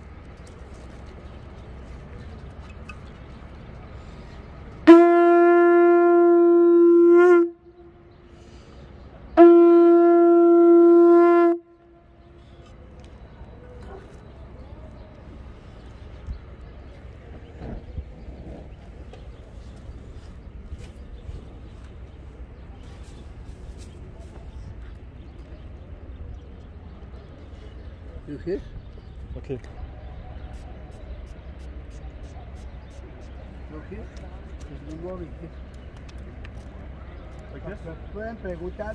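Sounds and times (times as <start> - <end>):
quiet outdoor background: 0.0 - 38.9
conch shell trumpet blasts: 4.8 - 7.6, 9.4 - 11.7.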